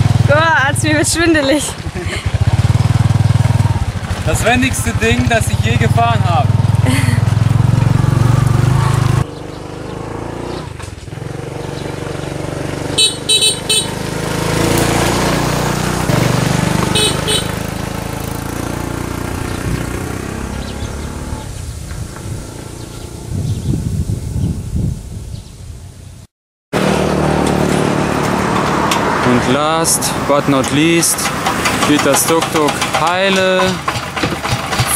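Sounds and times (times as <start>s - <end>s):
small engine running: 0.0s - 21.3s, 26.8s - 34.9s
different engine running steadily: 0.0s - 23.6s, 26.8s - 34.9s
vehicle horn tooting: 13.0s - 14.0s, 16.8s - 17.6s.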